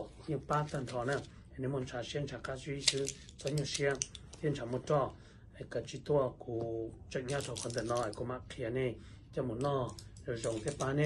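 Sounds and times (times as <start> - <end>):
man talking: 0.0 - 11.0
plastic bag crinkling: 7.3 - 8.2.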